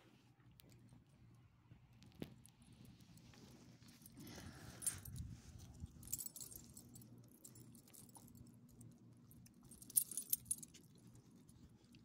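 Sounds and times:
dog tags jingling: 6.0 - 8.3, 9.7 - 10.7.

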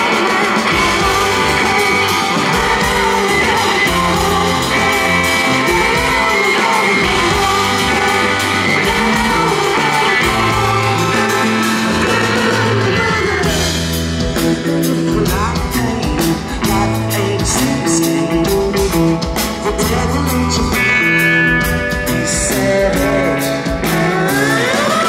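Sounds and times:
rock band playing live: 0.0 - 25.0
sung vocals: 0.0 - 25.0.

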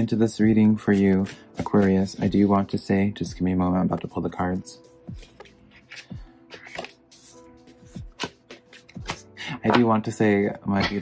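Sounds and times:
soft background music: 0.0 - 11.0
cards being shuffled: 0.9 - 2.5, 5.2 - 9.9
card slapping on card: 5.4 - 7.0, 8.1 - 9.9.

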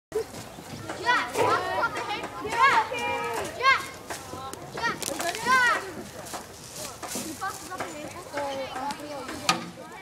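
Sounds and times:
children shouting and shrieking: 0.2 - 6.0.

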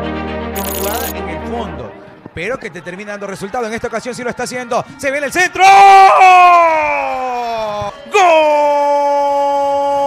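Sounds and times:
commentator's long goal shout: 5.2 - 10.0.

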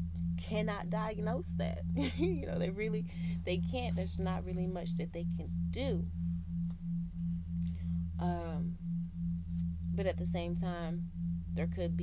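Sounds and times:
deep steady hum: 0.0 - 12.0
pulsing low droning tone: 0.0 - 12.0.

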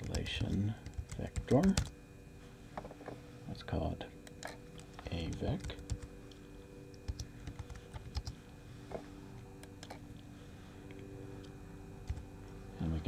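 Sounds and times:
computer keyboard typing: 0.0 - 1.9, 4.2 - 6.1, 7.0 - 8.4, 12.0 - 12.2
faint steady hum: 0.0 - 13.0.

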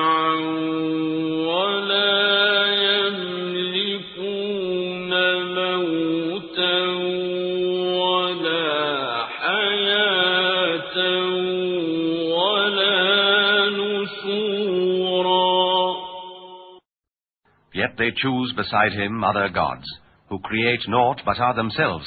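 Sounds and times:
person chanting recitation: 0.0 - 16.8.

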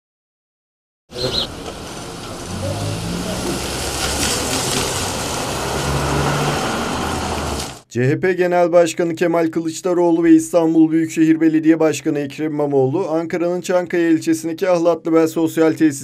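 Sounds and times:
car engine idling: 1.1 - 5.8
indistinct voices: 1.2 - 4.8.

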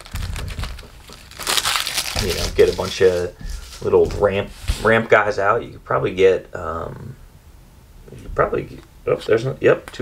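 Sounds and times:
trading cards rubbing and sliding: 2.2 - 5.0.

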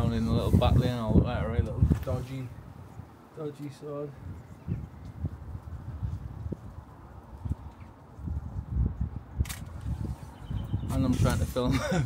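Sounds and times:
wind buffeting microphone: 0.0 - 3.3, 4.0 - 12.0
sharp click: 9.4 - 9.7.

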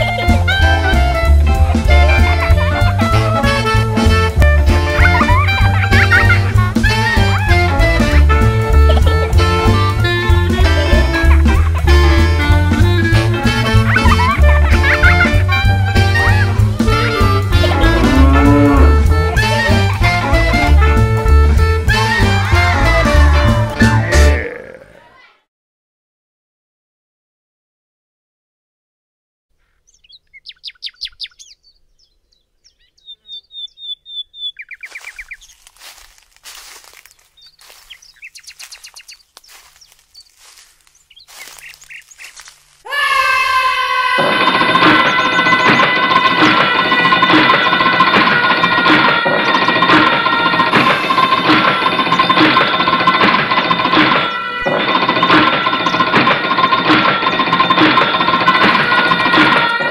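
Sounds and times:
bird-like chirps and trills: 29.6 - 42.7, 44.4 - 46.1.

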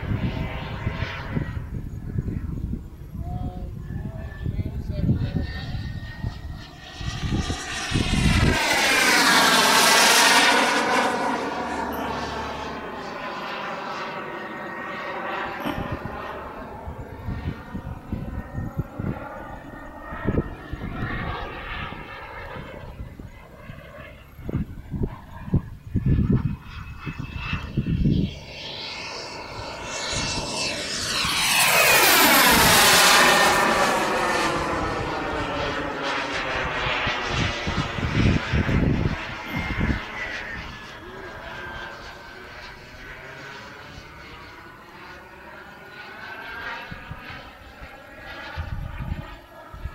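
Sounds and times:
jet flying by: 0.0 - 49.9.

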